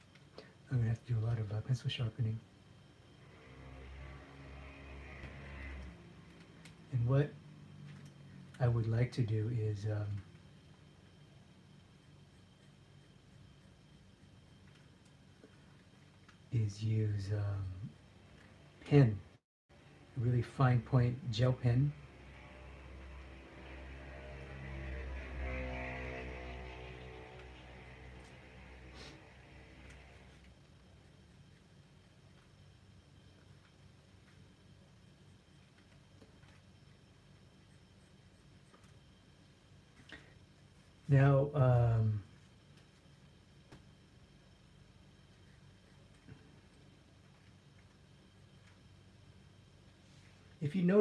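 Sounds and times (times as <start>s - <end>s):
low hum: 0.0s - 51.0s
engine-like drone: 3.1s - 10.9s, 20.2s - 30.5s
motor vehicle passing: 3.2s - 6.3s, 22.1s - 30.4s.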